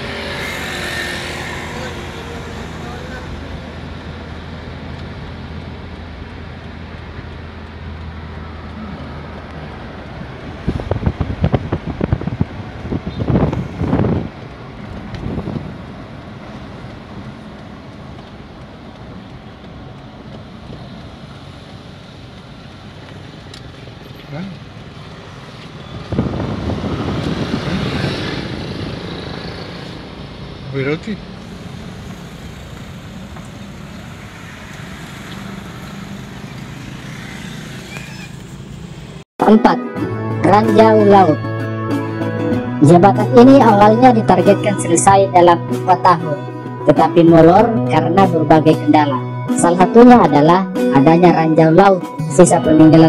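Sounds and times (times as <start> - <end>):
road and engine noise inside car: 0.0 - 39.3.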